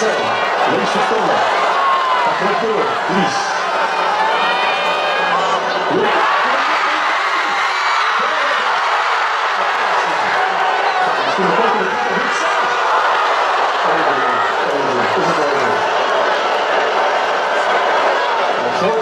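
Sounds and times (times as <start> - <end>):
crowd talking and calling out: 0.0 - 19.0.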